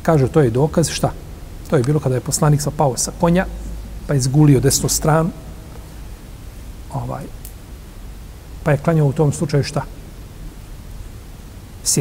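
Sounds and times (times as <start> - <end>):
man speaking: 0.0 - 5.7, 6.9 - 7.4, 8.6 - 10.0
low room hiss: 0.0 - 12.0.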